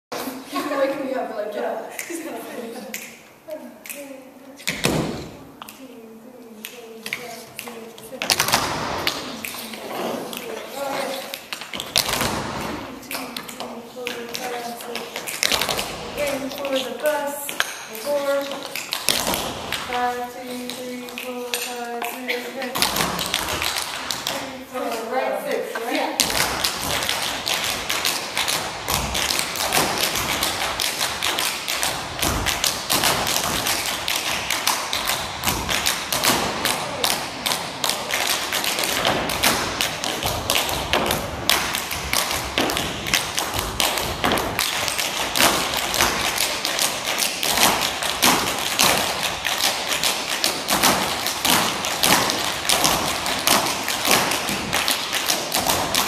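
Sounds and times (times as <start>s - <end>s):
tap shoes on wooden floor: 25.8s - 56.0s.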